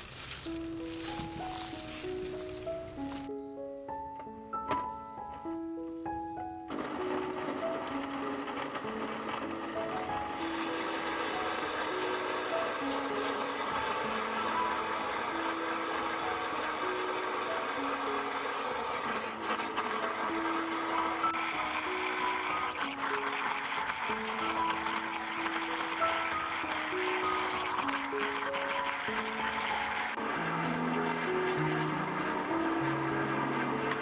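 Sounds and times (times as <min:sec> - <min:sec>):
blender running: 0:00.0 - 0:03.3, 0:06.7 - 0:34.0.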